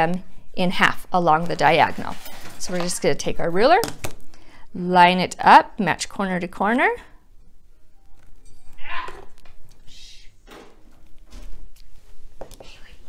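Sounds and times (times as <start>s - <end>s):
ruler and fabric rustling: 1.4s - 3.1s.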